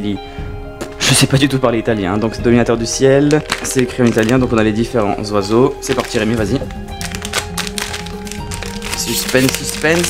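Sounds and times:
background music with held notes: 0.0s - 10.0s
foil sachet crinkling: 3.2s - 10.0s.

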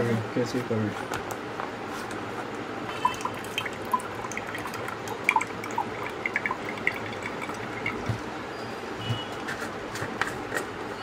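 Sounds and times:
juice dripping: 2.5s - 8.5s
juice trickling into a glass: 2.9s - 8.4s.

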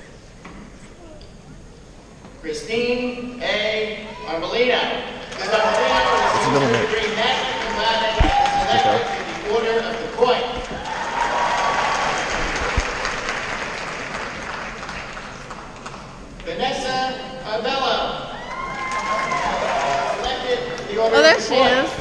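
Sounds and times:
audience applauding in a hall: 5.2s - 16.3s, 18.5s - 21.1s
person speaking: 6.3s - 6.9s, 8.7s - 9.1s.

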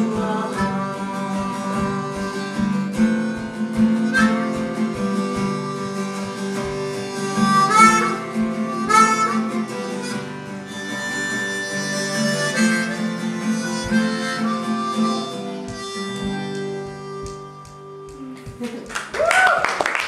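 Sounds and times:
harmonica melody: 0.0s - 18.6s
strummed acoustic guitar: 0.0s - 18.6s.

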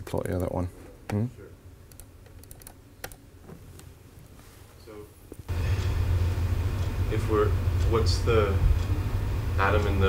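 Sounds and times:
low room hum: 0.0s - 10.0s
laptop keys clicking: 1.9s - 3.2s.

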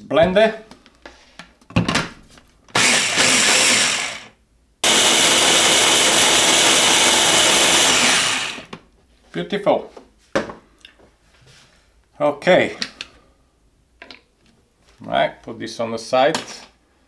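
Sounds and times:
blender motor running: 2.8s - 8.7s.

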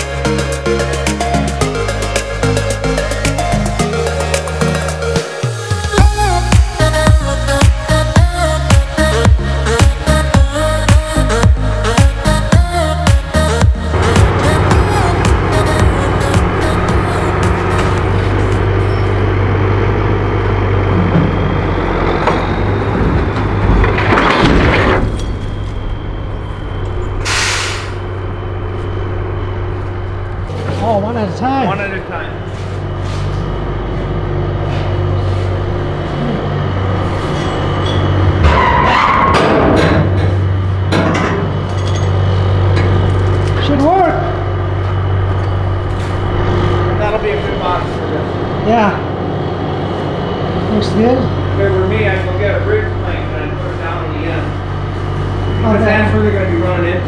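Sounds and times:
diesel engine idling: 0.0s - 57.0s
air hiss: 27.2s - 28.1s
voices talking: 30.6s - 32.9s, 50.5s - 57.0s.

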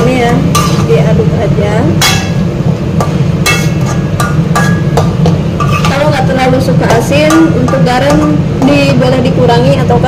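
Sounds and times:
metal spatula scraping a wok: 0.5s - 1.2s, 3.1s - 8.4s.

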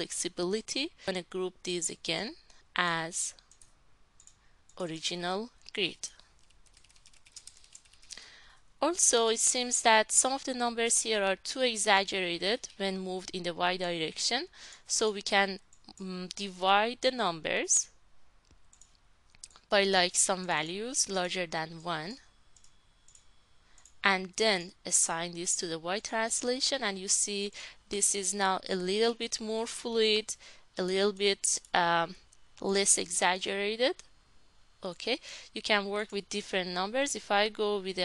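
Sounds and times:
computer mouse clicks: 3.3s - 4.8s, 5.6s - 8.2s, 18.4s - 19.7s, 22.5s - 24.0s
person speaking: 4.8s - 6.2s, 8.8s - 17.9s, 19.4s - 22.2s
computer keyboard typing: 6.4s - 8.2s, 18.7s - 19.0s.

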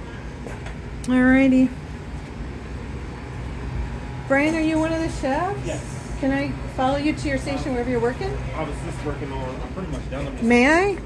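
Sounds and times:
kitchen ventilation hum: 0.0s - 11.0s.

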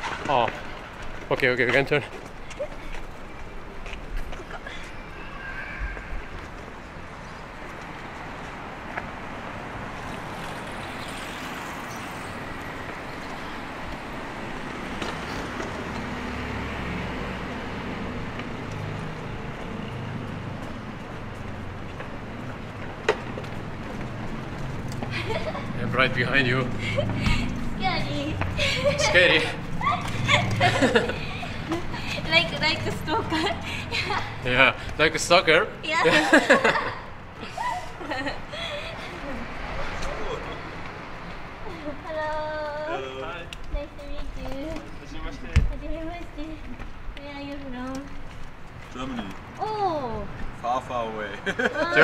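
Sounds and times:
city street traffic: 0.0s - 52.0s.

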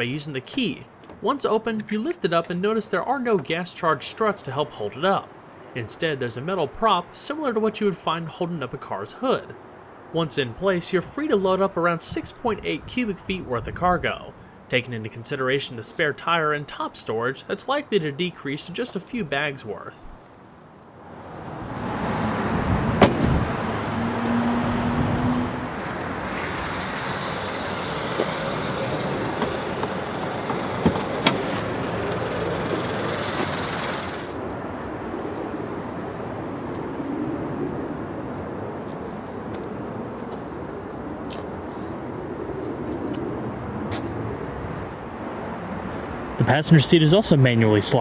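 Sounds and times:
road traffic rushing by: 0.0s - 14.8s, 17.4s - 48.0s.

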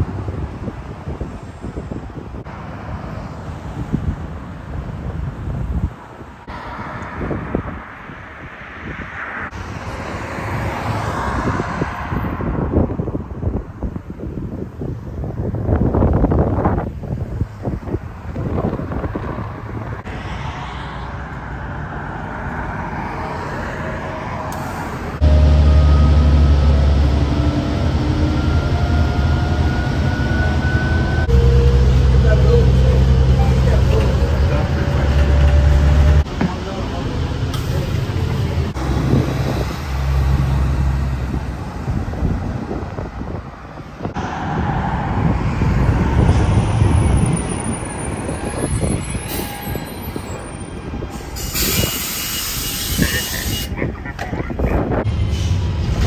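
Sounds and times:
bus pulling away with rising whine: 0.0s - 54.2s, 54.8s - 56.0s
road traffic passing: 0.0s - 56.0s
wind: 0.0s - 56.0s.

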